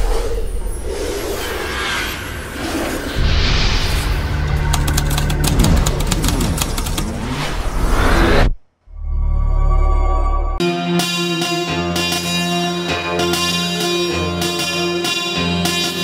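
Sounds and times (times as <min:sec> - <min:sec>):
whooshing sound effects: 0:00.0 - 0:04.6, 0:07.0 - 0:08.8
rapid sharp clicks: 0:04.5 - 0:07.4
intro music: 0:09.0 - 0:16.0.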